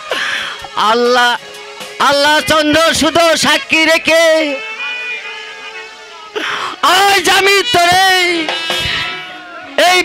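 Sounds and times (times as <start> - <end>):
man singing through microphone: 2.0 - 5.1, 6.7 - 10.0.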